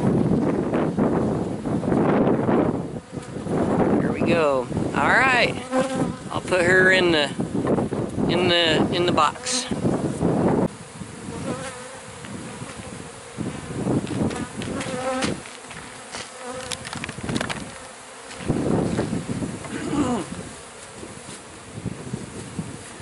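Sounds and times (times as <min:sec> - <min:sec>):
honeybees buzzing: 0:00.0 - 0:23.0.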